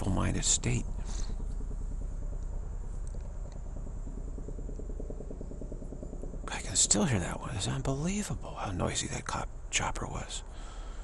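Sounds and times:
helicopter rotor chop: 0.0s - 9.4s.

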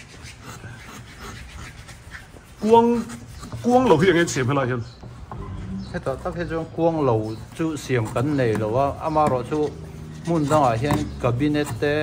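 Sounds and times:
rasp scraping wood: 0.0s - 12.0s.

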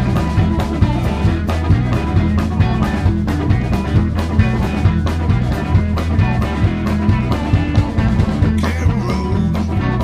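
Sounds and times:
bass: 0.0s - 10.0s
drum kit beat: 0.0s - 10.0s
electric guitars: 0.0s - 10.0s.

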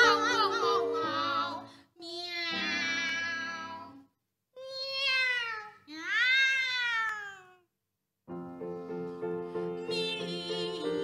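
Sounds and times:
piano chords: 0.0s - 1.7s
two women singing cat-like sounds: 0.0s - 4.0s, 9.8s - 11.0s.

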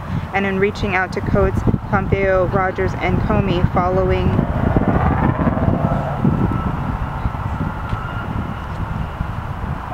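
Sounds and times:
low outdoor rumble: 0.0s - 9.9s.

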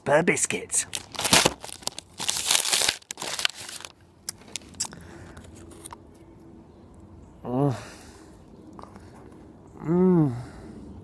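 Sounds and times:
wrapper crinkling: 0.9s - 4.9s.

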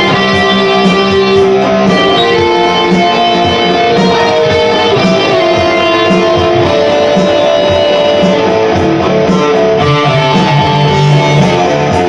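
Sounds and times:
electric guitar ringing notes: 0.0s - 12.0s.

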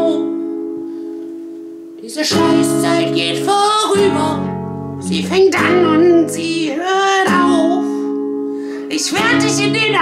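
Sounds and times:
person singing: 0.0s - 0.5s, 2.0s - 8.2s, 8.8s - 10.0s
acoustic guitar chord ringing: 0.0s - 10.0s.

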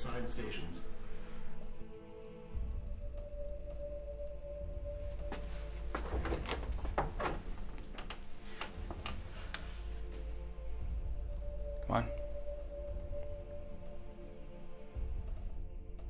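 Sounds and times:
film score low drone: 0.0s - 16.0s.

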